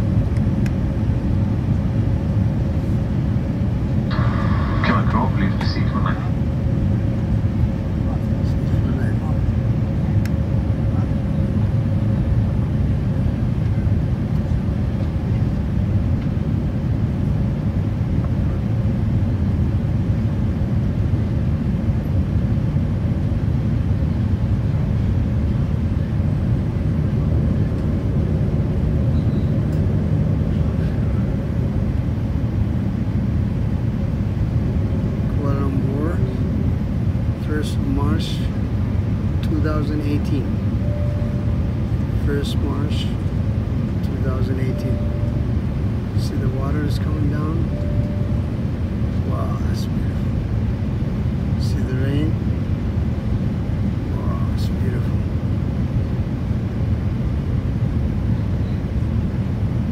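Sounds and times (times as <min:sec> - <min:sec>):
airliner cabin engine rumble: 0:00.0 - 0:59.9
faint steady hum: 0:00.0 - 0:59.9.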